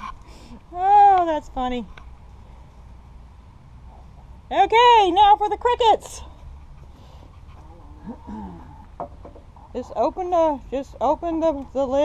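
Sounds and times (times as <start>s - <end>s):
hens clucking: 0.0s - 0.3s.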